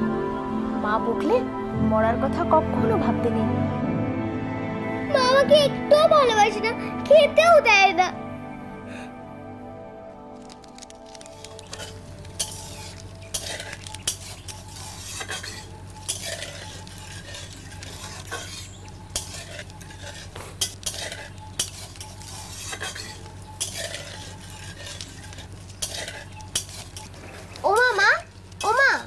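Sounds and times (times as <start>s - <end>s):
steady low hum: 0.0s - 29.0s
metal spatula scraping wok: 12.5s - 27.0s.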